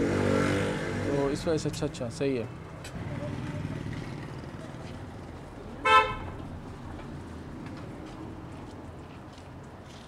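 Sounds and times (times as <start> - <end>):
street traffic rumble: 0.0 - 10.0
vehicle horn toot: 5.8 - 6.3.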